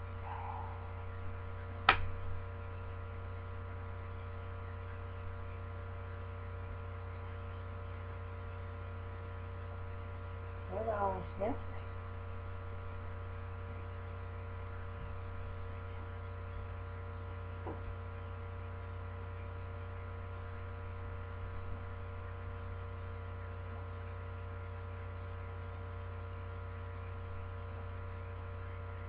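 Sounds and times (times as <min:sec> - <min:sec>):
electrical hum: 0:00.0 - 0:29.0.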